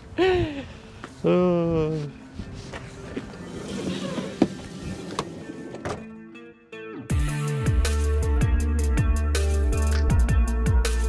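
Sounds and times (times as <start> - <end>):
wind noise: 1.7 - 5.6
sliding van door closing: 3.4 - 6.1.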